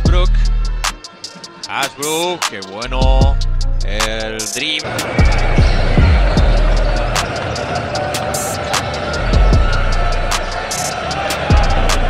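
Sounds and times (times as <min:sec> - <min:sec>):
arena crowd noise: 0:04.0 - 0:12.0.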